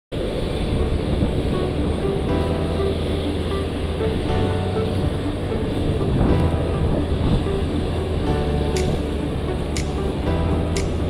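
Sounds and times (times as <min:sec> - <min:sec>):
aircraft engines rumbling: 0:00.1 - 0:11.0
music in held notes: 0:00.2 - 0:11.0.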